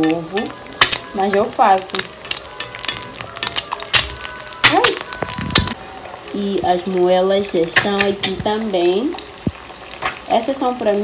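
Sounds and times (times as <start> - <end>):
crackles and pops: 0.0 - 5.8, 7.0 - 11.0
oil sizzling around frying egg: 0.0 - 11.0.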